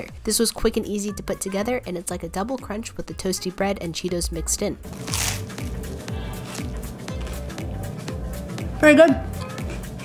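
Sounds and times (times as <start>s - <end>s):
background music with low beat: 0.0s - 10.0s
crunchy bite into sandwich: 4.9s - 5.7s.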